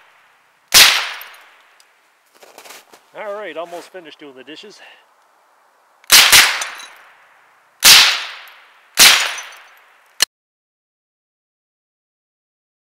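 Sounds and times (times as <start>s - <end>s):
rifle shots: 0.7s - 1.4s, 6.1s - 6.9s, 7.8s - 9.7s.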